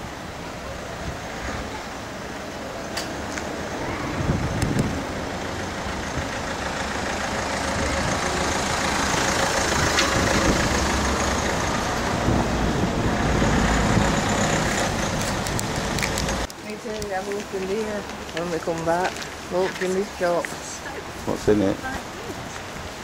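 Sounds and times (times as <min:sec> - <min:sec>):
heavy vehicle engine rumble: 0:00.0 - 0:21.4
road noise: 0:00.0 - 0:23.0.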